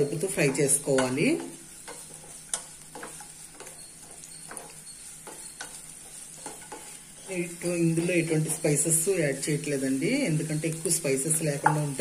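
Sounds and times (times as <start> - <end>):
onions sizzling in oil: 0.0 - 12.0
spatula scraping and tapping pan: 0.0 - 12.0.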